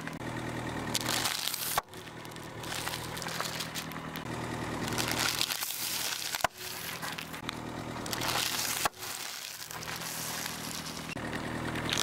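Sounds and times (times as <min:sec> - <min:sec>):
car engine idling: 0:00.0 - 0:12.0
tire crackling on plastic cup: 0:00.0 - 0:12.0.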